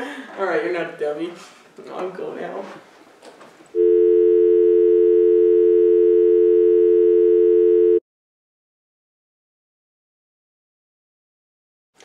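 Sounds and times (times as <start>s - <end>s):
two-note electronic dial tone: 3.8s - 8.0s.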